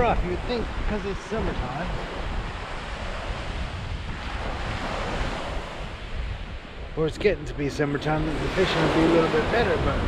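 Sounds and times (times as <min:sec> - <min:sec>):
wind rumbling on microphone: 0:00.0 - 0:10.0
surf washing on shingle: 0:08.0 - 0:10.0.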